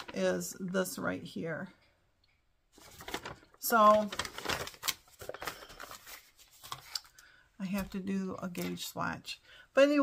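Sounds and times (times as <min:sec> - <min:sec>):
paper rustling: 0:00.0 - 0:00.4, 0:02.7 - 0:08.9.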